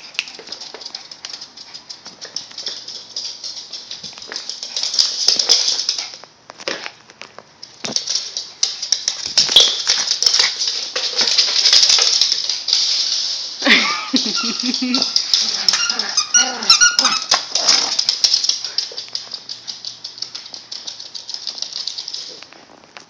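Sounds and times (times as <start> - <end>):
dog claws clicking on wooden floor: 0.0 - 13.5, 14.2 - 23.0.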